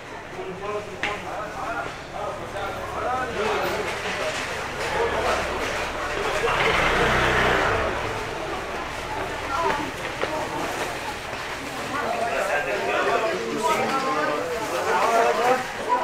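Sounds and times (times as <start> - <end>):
people talking: 0.0 - 16.0
motor scooter passing: 3.5 - 12.3.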